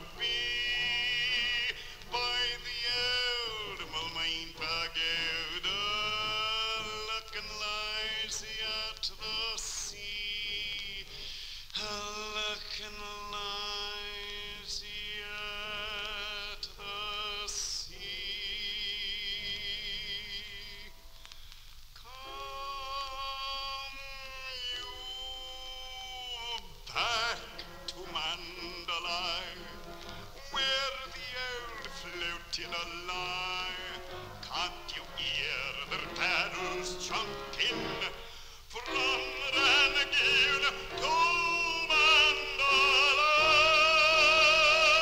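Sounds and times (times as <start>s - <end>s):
operatic baritone singing: 0.0s - 21.3s, 22.0s - 45.0s
singer breathing: 1.8s - 2.1s, 11.1s - 11.8s, 21.1s - 21.9s, 38.2s - 38.7s
orchestra playing: 27.0s - 45.0s.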